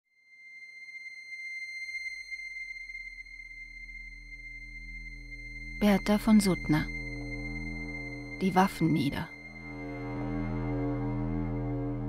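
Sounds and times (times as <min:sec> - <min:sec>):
high pure tone: 0:00.5 - 0:12.0
low drone: 0:01.0 - 0:12.0.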